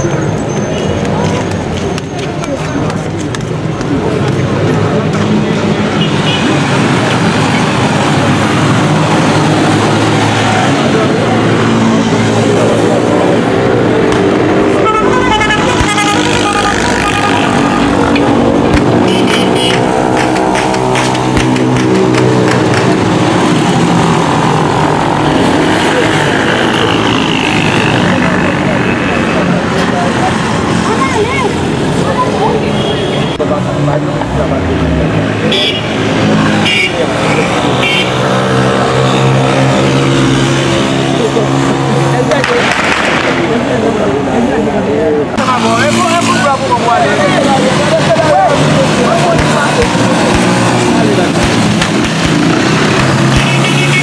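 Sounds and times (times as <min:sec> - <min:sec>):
vehicle horns: 0:05.8 - 0:06.9, 0:14.6 - 0:21.1, 0:32.4 - 0:33.5, 0:35.4 - 0:41.8, 0:52.1 - 0:54.0
rapid sharp cracks: 0:42.4 - 0:43.7, 0:49.3 - 0:53.6.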